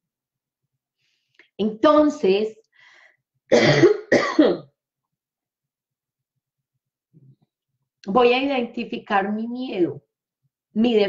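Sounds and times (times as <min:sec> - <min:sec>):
woman coughing: 0:03.5 - 0:04.8.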